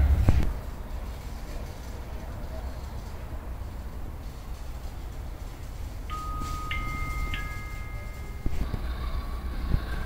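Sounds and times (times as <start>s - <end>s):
steady background noise: 0.0s - 10.0s
three-note chime: 6.1s - 8.6s.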